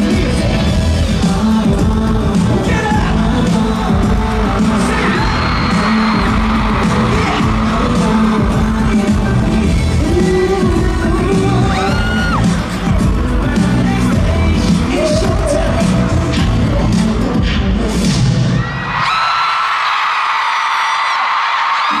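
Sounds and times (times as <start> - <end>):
crowd screaming and cheering: 0.0 - 22.0
live pop music with heavy bass: 0.0 - 22.0.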